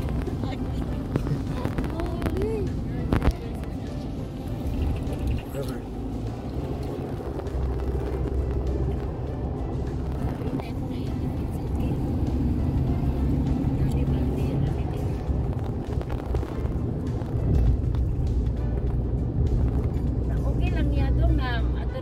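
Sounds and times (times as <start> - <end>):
car tyre and engine rumble: 0.0 - 22.0.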